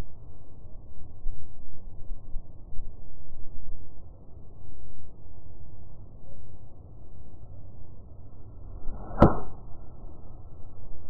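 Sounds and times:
golf club striking ball: 9.0s - 9.6s.

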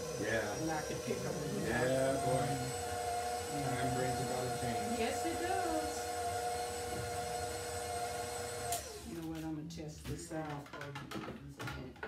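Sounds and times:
stand mixer motor humming: 0.0s - 9.3s.

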